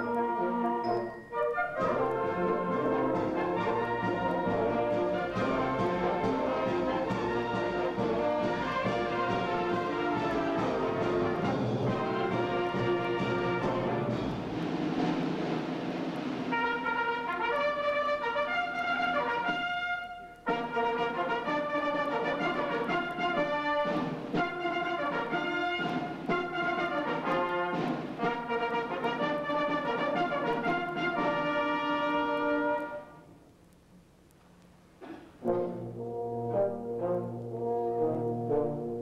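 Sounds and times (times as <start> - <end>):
military wind band playing: 0.0 - 33.3, 35.4 - 39.0.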